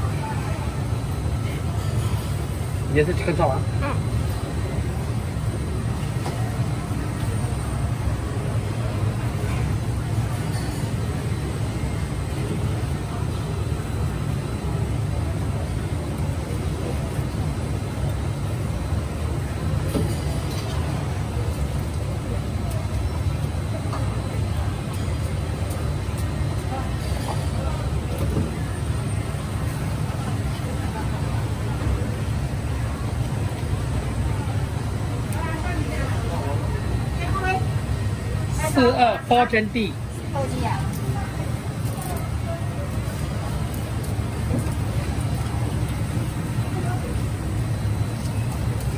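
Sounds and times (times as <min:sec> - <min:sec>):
faint voices: 0:00.0 - 0:48.9
low kitchen hum: 0:00.0 - 0:48.9.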